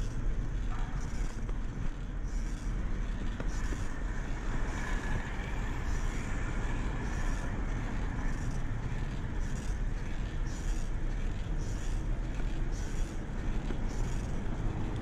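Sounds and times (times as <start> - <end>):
bicycle wind and tyre rumble: 0.0 - 15.0
road traffic: 0.0 - 15.0.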